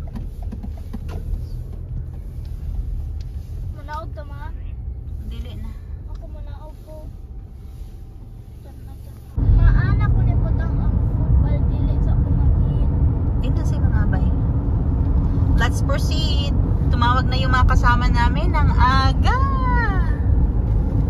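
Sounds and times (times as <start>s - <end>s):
car engine and road rumble: 0.0s - 21.0s.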